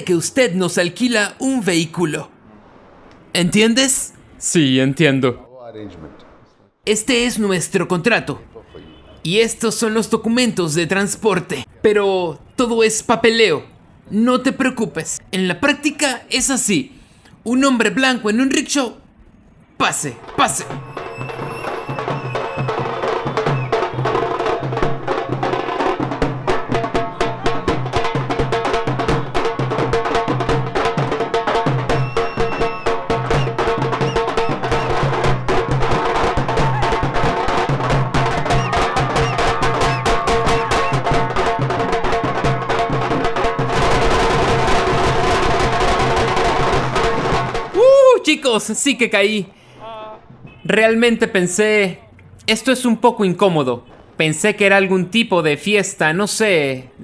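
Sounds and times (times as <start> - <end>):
street drum band playing: 0.0 - 2.4, 6.9 - 16.8, 19.8 - 51.6
firecrackers crackling: 43.6 - 47.7.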